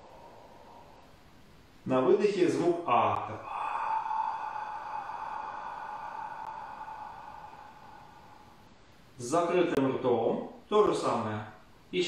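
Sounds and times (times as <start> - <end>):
slow whispered exhalation: 0.0 - 1.5, 3.3 - 9.2.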